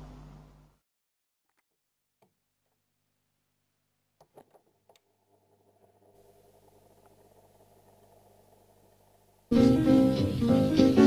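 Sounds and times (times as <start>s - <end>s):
record surface hiss: 0.0s - 0.8s, 3.3s - 11.0s.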